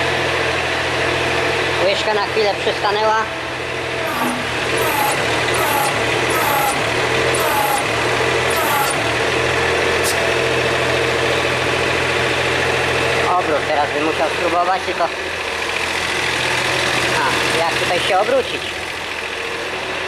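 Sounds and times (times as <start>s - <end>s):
diesel engine idling: 2.4s - 20.0s.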